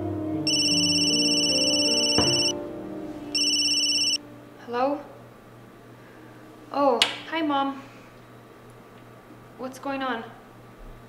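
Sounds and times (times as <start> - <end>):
mobile phone ringing: 0.5 - 2.6, 3.3 - 4.2
knock: 2.2 - 2.5.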